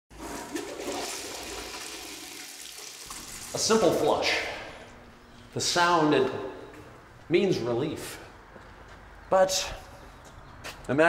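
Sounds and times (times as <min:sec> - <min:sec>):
toilet flushing: 0:00.1 - 0:04.7.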